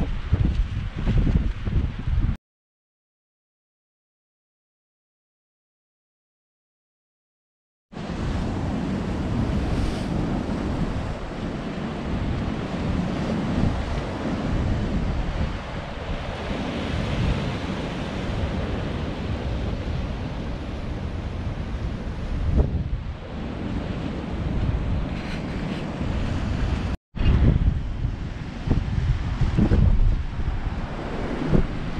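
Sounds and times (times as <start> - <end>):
wind buffeting microphone: 0.0 - 2.4, 8.0 - 31.9.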